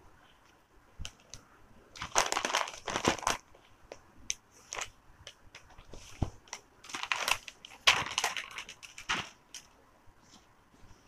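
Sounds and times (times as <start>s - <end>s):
packing paper crinkling: 1.0s - 3.6s, 4.6s - 4.9s, 5.6s - 9.7s.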